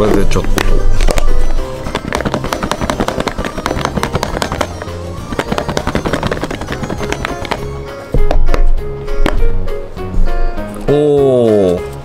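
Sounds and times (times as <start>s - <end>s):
background music: 0.0s - 12.0s
plastic container shaken with contents: 1.9s - 7.6s.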